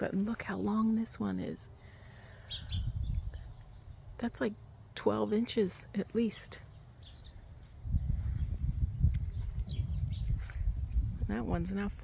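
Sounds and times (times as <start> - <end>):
wind buffeting microphone: 2.5 - 4.1, 7.1 - 12.0.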